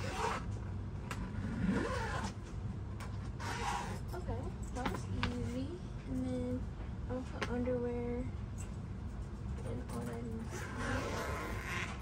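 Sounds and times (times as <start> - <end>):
suitcase zipper rasping: 0.0 - 0.5, 1.2 - 2.4, 3.4 - 4.2, 10.5 - 12.0.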